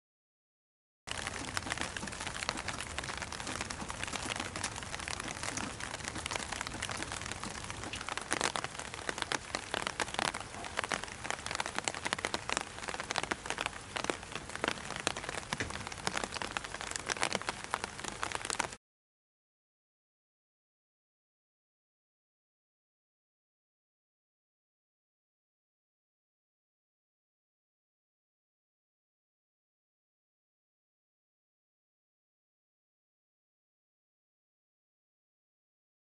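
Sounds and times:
sharp drip ticks: 0:01.1 - 0:11.0
rain pattering: 0:01.1 - 0:18.8.

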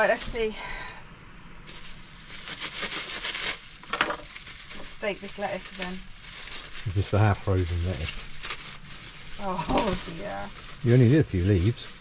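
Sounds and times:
plastic bag crinkling: 0:01.5 - 0:12.0.

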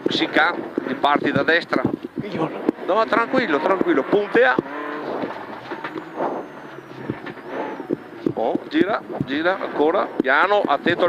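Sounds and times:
car engine at low revs: 0:00.0 - 0:11.0.

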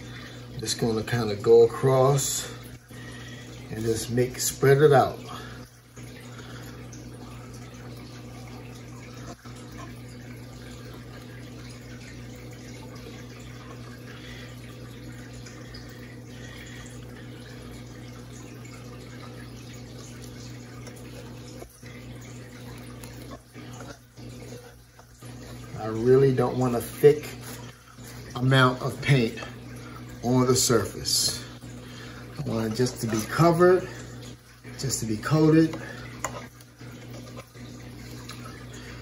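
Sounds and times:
low room hum: 0:00.0 - 0:39.0.

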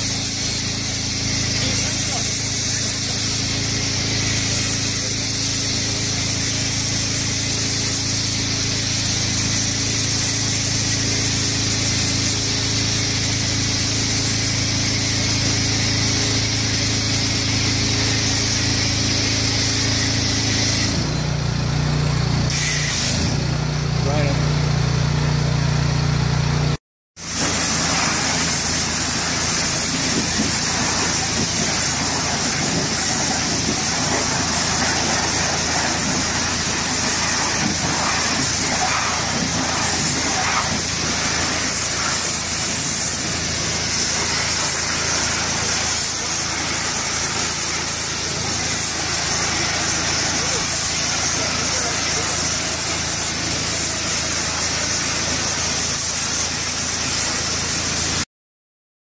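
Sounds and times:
hiss of pressure washer spray: 0:00.0 - 0:21.2, 0:22.5 - 0:23.4, 0:27.2 - 0:58.3.

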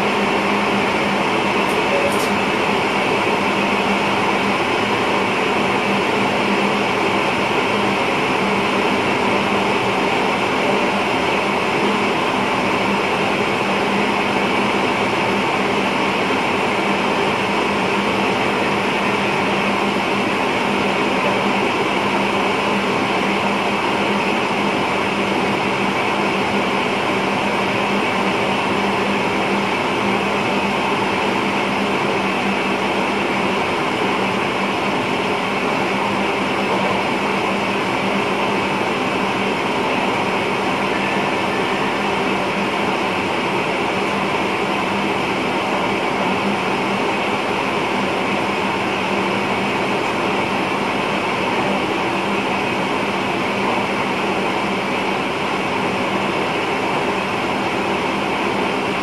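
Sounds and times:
train cab running rumble and hiss: 0:00.0 - 0:59.0.

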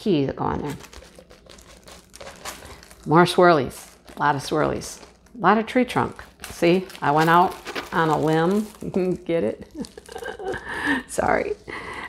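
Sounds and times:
plastic film crinkling: 0:00.4 - 0:12.0.

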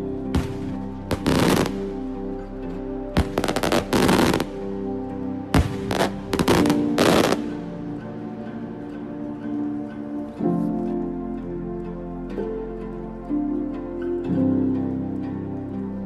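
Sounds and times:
synthwave background music: 0:00.0 - 0:16.0.

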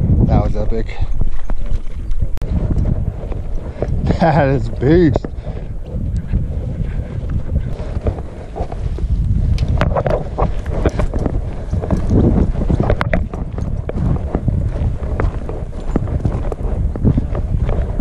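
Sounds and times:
wind on microphone: 0:00.0 - 0:18.0
footsteps on gravel: 0:00.5 - 0:06.6, 0:07.2 - 0:18.0.

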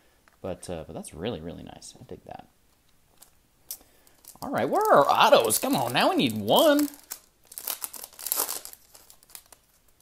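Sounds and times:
foil wrapper crinkling: 0:04.0 - 0:10.0.

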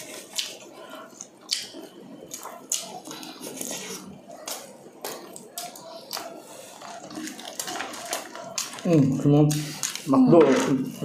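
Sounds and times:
chewing fried chicken: 0:00.0 - 0:11.0.

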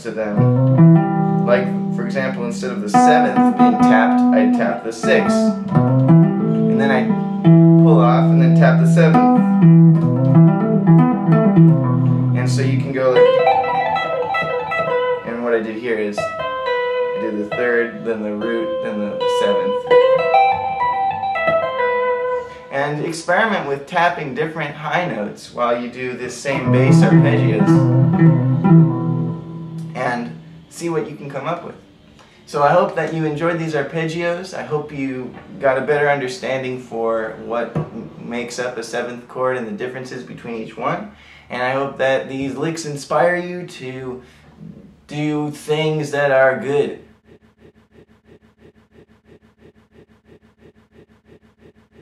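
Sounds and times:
electric guitar tapped arpeggio: 0:00.4 - 0:02.4, 0:03.0 - 0:07.9, 0:09.1 - 0:12.4, 0:13.1 - 0:15.3, 0:16.2 - 0:17.6, 0:18.8 - 0:22.3, 0:26.6 - 0:30.6.

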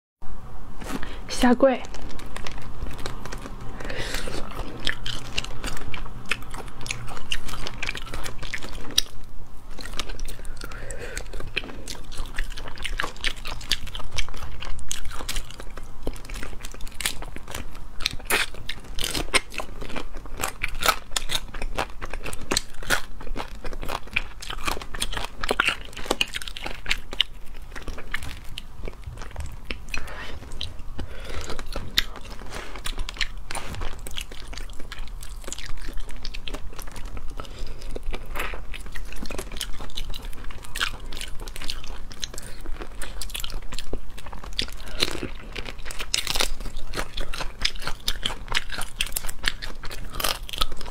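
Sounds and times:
biting and chewing: 0:01.8 - 0:50.9
shells crunching and cracking: 0:11.2 - 0:50.9.

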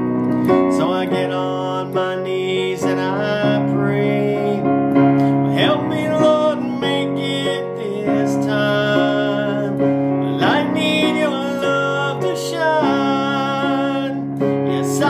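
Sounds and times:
guitar: 0:00.0 - 0:01.3
piano: 0:00.0 - 0:15.0
man singing: 0:00.4 - 0:15.0.

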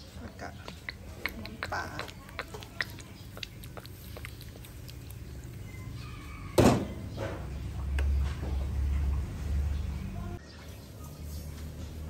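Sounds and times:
broth boiling in a pot: 0:00.0 - 0:07.2.

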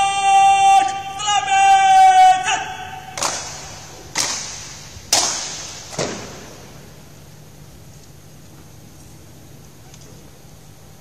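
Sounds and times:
person shouting command: 0:00.0 - 0:03.6
sharp rifle slaps: 0:03.2 - 0:06.7.

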